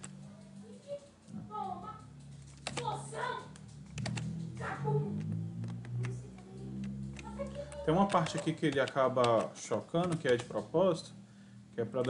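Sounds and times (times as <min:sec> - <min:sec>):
soft background music: 0:00.0 - 0:12.0
computer input clicks: 0:02.3 - 0:04.6, 0:05.2 - 0:10.8
person speaking: 0:04.6 - 0:11.2.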